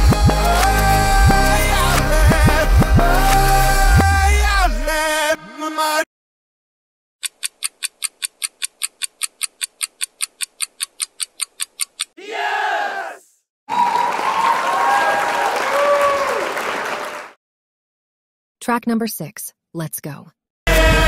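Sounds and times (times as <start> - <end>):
loud dense music: 0.0 - 4.8.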